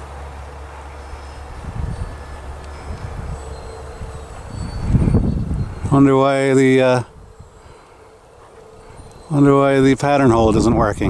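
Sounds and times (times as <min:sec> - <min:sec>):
distant model airplane motor drone: 0:00.0 - 0:11.0
wind rumble on microphone: 0:01.0 - 0:07.9, 0:08.6 - 0:11.0.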